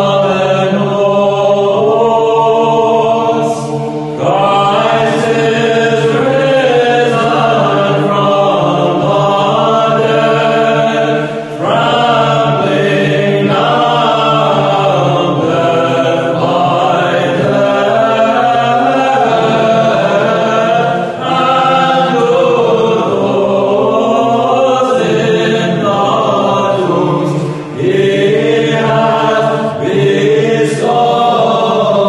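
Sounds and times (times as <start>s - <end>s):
choir chanting unaccompanied: 0.0s - 32.0s.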